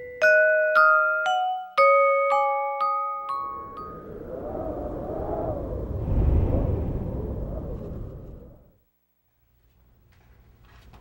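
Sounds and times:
wavering hum: 0:03.3 - 0:08.8
deep low rumble: 0:03.6 - 0:08.8.

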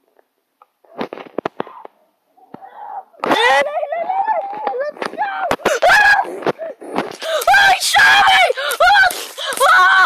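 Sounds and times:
child's voice: 0:02.6 - 0:06.4, 0:07.2 - 0:10.0.

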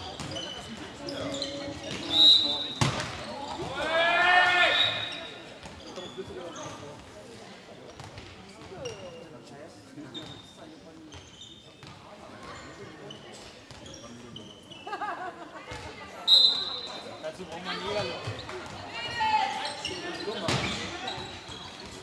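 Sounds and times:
sneaker squeaks: 0:00.0 - 0:03.8, 0:04.5 - 0:07.1, 0:07.9 - 0:09.4, 0:10.0 - 0:15.1, 0:15.7 - 0:22.0
loud shout: 0:03.7 - 0:05.1.

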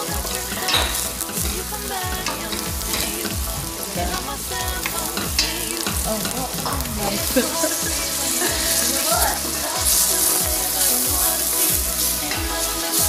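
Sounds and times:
background music with steady beat: 0:00.0 - 0:13.0
onion sizzling in butter: 0:00.0 - 0:13.0.

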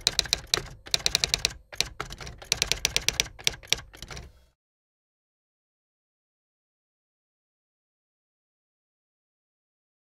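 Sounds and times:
typewriter key clicks: 0:00.0 - 0:04.3.

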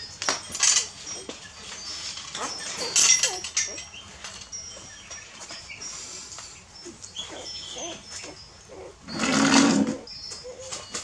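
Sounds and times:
puppies squeaking and whimpering: 0:00.0 - 0:11.0.

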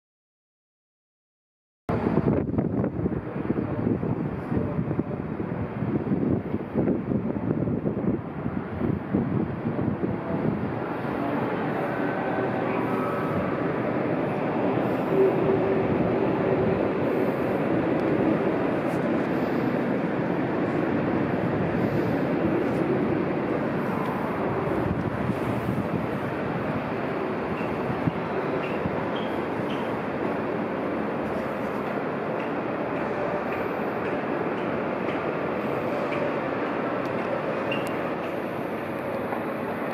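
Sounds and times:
city background noise: 0:01.9 - 0:39.9
trains rumbling: 0:01.9 - 0:39.9.

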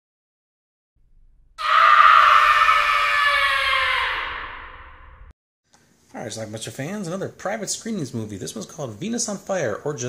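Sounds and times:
long loud scream: 0:01.6 - 0:05.3.

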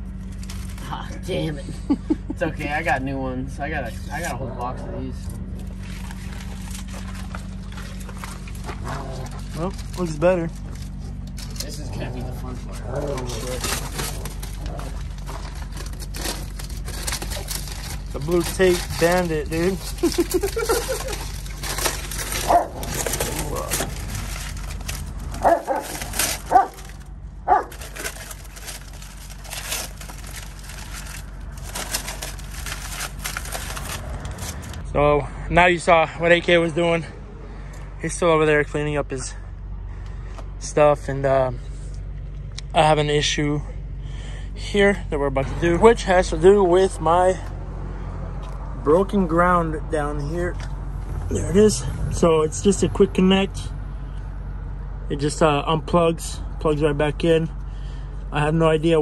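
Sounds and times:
tape crackling and crinkling: 0:00.0 - 0:01.2, 0:05.5 - 0:34.8
diesel truck engine idling: 0:00.0 - 0:59.0
light clicks and crunches: 0:12.5 - 0:34.8.

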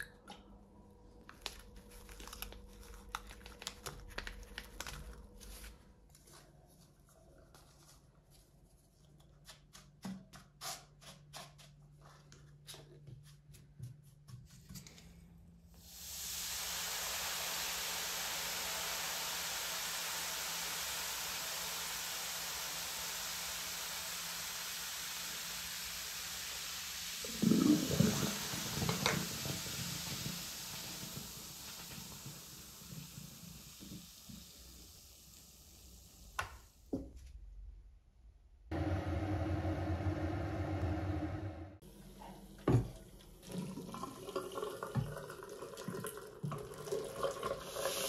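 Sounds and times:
electric kettle heating water: 0:15.8 - 0:36.6, 0:38.7 - 0:48.0
foam fizzing in sink: 0:15.8 - 0:36.7, 0:43.4 - 0:48.0
liquid gurgling down drain: 0:27.2 - 0:33.3.

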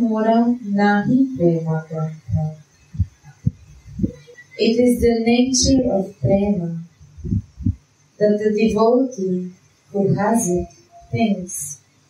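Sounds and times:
soft low thumps: 0:01.0 - 0:07.9, 0:10.0 - 0:11.4.

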